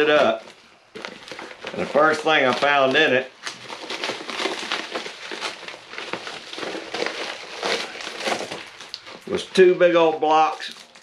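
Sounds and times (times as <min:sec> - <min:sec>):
padded envelope crinkling: 0:00.0 - 0:09.6, 0:10.3 - 0:11.0.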